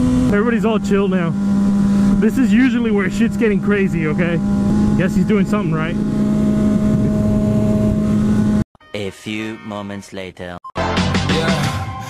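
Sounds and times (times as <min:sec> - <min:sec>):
motorcycle engine running: 0:00.0 - 0:08.6
wind noise: 0:05.9 - 0:08.6.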